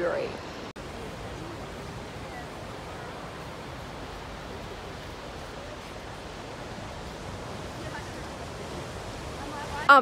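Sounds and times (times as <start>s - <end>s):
ocean surf: 0.0s - 10.0s
wind: 0.0s - 10.0s.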